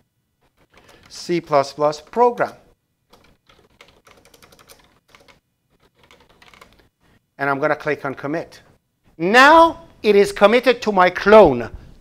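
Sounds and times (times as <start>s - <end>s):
computer keyboard typing: 0.5s - 1.2s, 2.0s - 6.8s.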